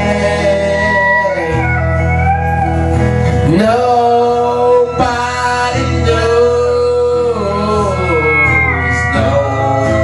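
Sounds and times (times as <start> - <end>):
acoustic guitar accompaniment: 0.0 - 10.0
harmonica lead line: 0.0 - 10.0.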